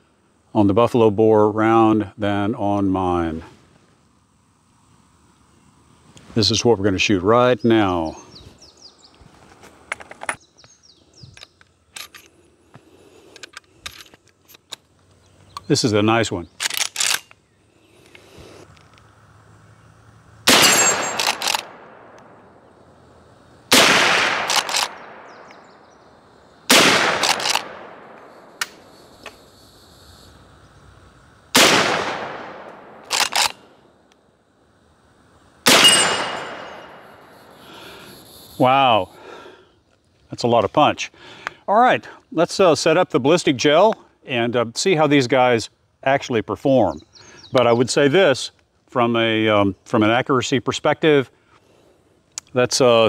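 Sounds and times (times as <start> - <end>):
birds chirping: 4.9 - 9.5, 10.1 - 13.8, 14.9 - 18.6, 24.7 - 26.7, 35.8 - 42.7, 46.3 - 48.4
rifle lever clicks: 16.6 - 17.4, 21.0 - 22.3, 24.4 - 25.6, 27.2 - 28.8, 33.0 - 33.6
rifle gunshots: 20.5 - 22.5, 23.7 - 25.5, 26.7 - 28.6, 31.5 - 33.6, 35.6 - 37.3.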